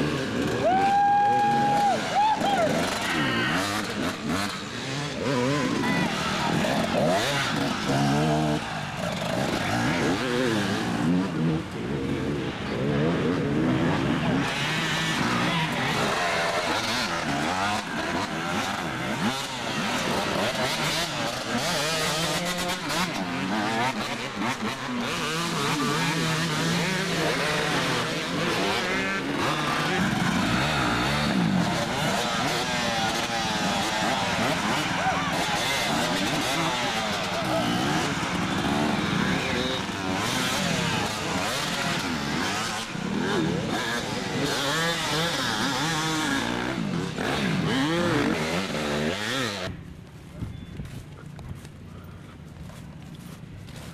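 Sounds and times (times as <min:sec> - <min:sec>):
voices: 0:00.0 - 0:52.7
dirt bike engines revving: 0:00.0 - 0:53.9.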